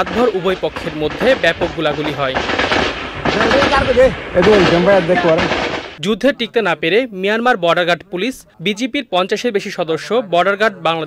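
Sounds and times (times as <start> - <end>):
people talking: 0.0 - 2.4, 3.4 - 11.0
gunshot boom: 0.0 - 6.0.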